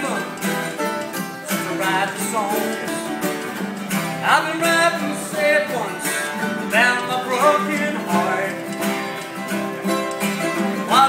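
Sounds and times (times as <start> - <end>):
acoustic guitar and mandolin playing: 0.0 - 11.0
person singing: 0.0 - 11.0
rhythmic clicks: 0.0 - 11.0.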